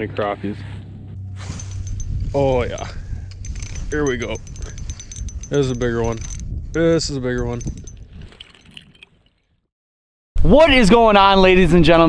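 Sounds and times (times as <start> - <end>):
small clicks: 3.3 - 9.4.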